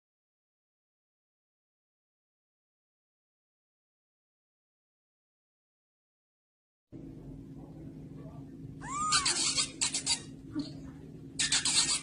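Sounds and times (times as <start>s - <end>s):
kitten mewing: 8.8s - 10.7s.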